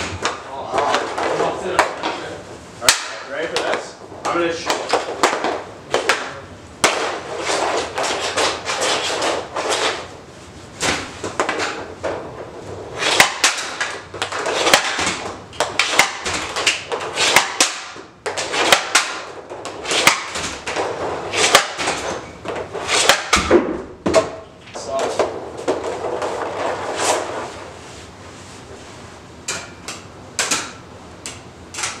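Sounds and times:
sharp cracks of hockey shots: 0.0s - 10.1s, 10.8s - 24.4s
pucks scraping on surface: 0.0s - 29.2s.

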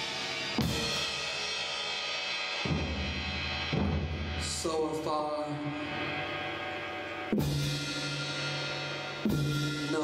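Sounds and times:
cymbal shimmer: 0.0s - 10.0s.

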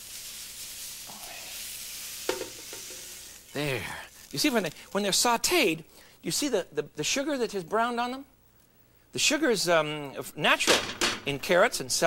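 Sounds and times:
vegetables sizzling in a frying pan: 0.0s - 4.8s.

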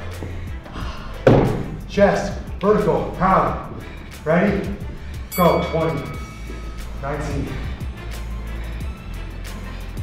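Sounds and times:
workout music with steady beat: 0.0s - 10.0s.

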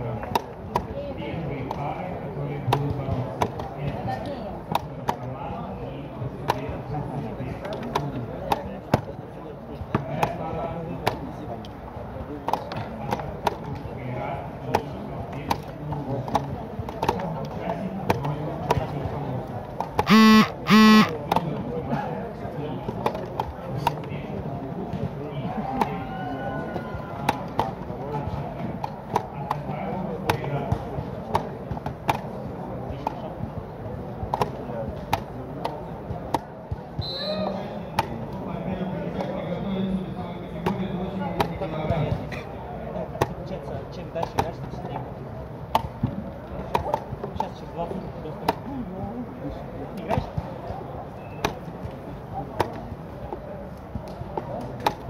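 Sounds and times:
background chatter: 0.0s - 55.0s
loud short beeps: 20.1s - 21.1s.

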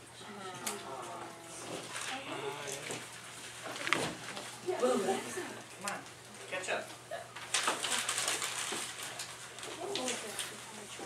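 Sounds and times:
paper rustling and crinkling: 7.4s - 11.0s.

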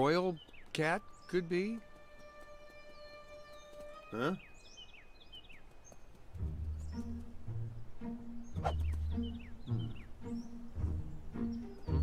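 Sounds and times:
playful film score music: 0.0s - 5.4s, 6.2s - 12.0s.

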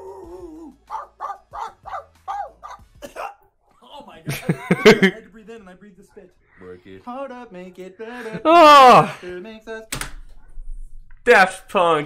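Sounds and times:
man imitating puppy yips: 0.0s - 2.8s
loud laughter: 4.3s - 5.2s.

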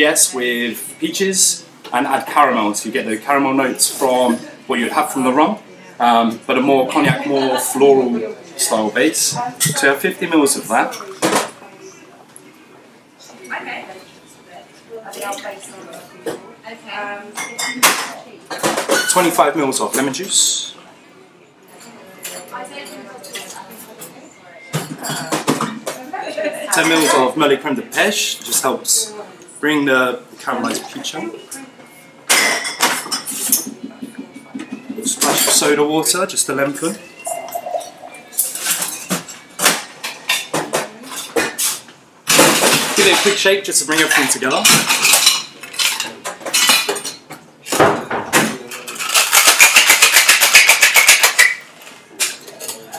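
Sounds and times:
cocktail shaker tins and glassware clinking: 32.3s - 35.7s, 37.1s - 41.8s, 48.7s - 52.9s
metal jigger clinking on shaker tin: 48.8s - 51.6s.

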